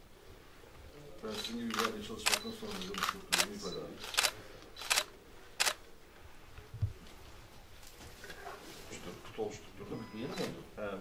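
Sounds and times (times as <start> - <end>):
camera shutter clicking: 1.3 - 5.8
soft low thump: 6.8 - 7.0.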